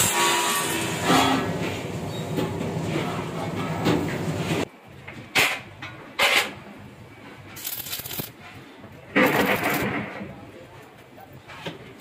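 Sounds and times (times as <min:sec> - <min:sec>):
arc welding crackle: 0:07.6 - 0:08.3, 0:09.2 - 0:09.9.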